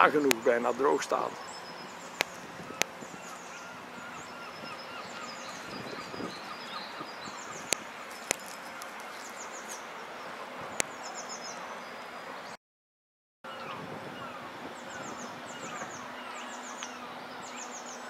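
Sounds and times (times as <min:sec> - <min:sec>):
birds chirping and singing: 0:00.0 - 0:12.1, 0:13.5 - 0:18.0
steady background noise: 0:00.0 - 0:12.6, 0:13.5 - 0:18.0.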